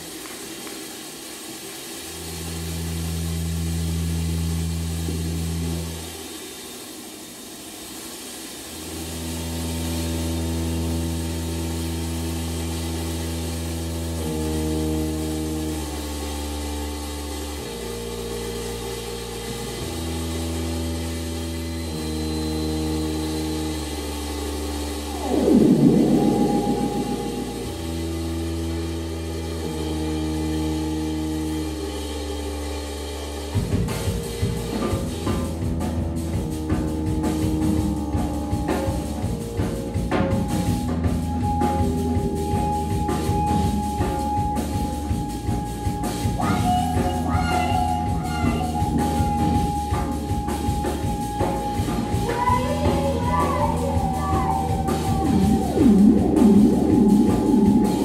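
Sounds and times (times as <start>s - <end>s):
constant hiss: 0.0s - 22.0s
synthesizer drone notes: 2.0s - 6.2s, 8.8s - 58.0s
swooping electronic sound: 23.3s - 29.8s, 41.4s - 58.0s.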